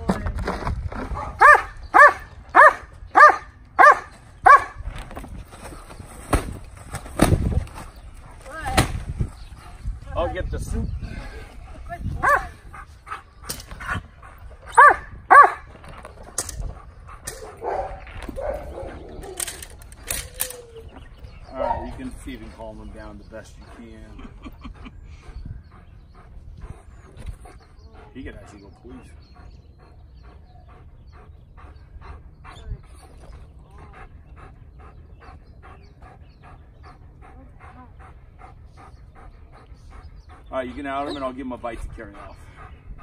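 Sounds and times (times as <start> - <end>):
dog barking: 1.3 - 4.8, 12.2 - 12.5, 14.8 - 15.6, 17.5 - 19.0
dog panting: 21.1 - 43.0.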